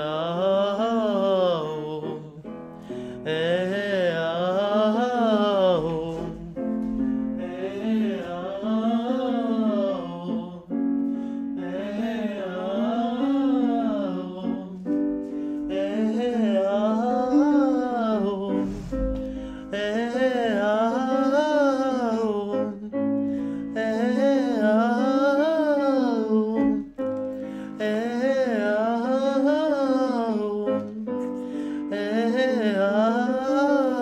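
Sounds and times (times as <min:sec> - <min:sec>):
man singing vocal scales: 0:00.0 - 0:10.8, 0:11.5 - 0:34.0
piano chords: 0:00.0 - 0:34.0.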